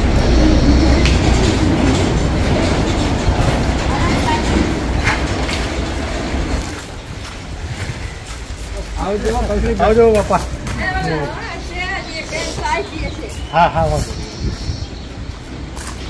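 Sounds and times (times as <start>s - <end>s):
faint voices: 0.0s - 6.6s
wind buffeting microphone: 0.0s - 16.0s.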